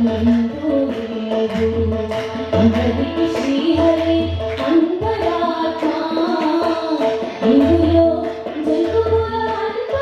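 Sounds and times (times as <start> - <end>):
tabla strokes: 0.0 - 10.0
violin melody: 0.0 - 10.0.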